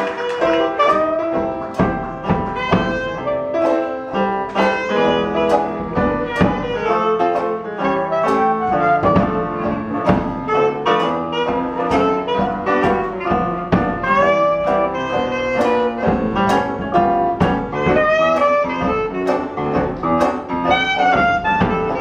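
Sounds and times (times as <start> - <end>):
banjo strumming: 0.0 - 22.0
clarinet melody: 0.0 - 22.0
jazz rhythm section: 0.0 - 22.0.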